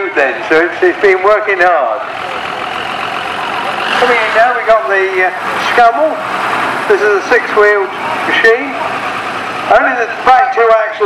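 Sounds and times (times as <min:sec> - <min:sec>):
diesel lorry engine running: 0:00.0 - 0:11.0.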